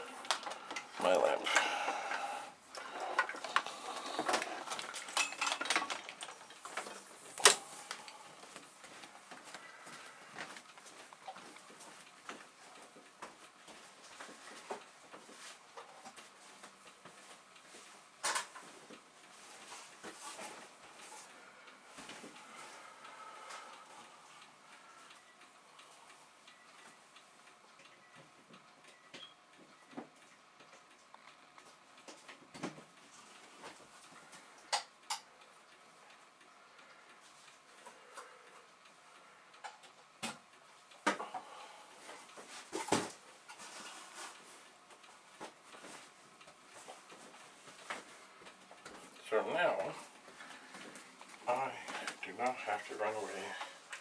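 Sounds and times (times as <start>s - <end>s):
objects clicking and knocking: 3.0s - 7.6s.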